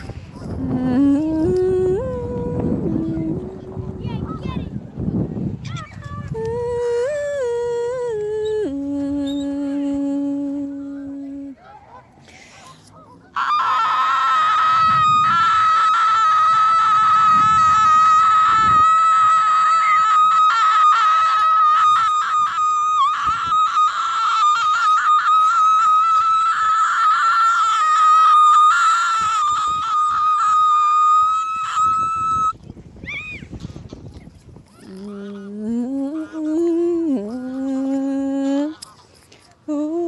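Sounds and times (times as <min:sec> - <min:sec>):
woman singing high note: 0:06.3 - 0:11.6.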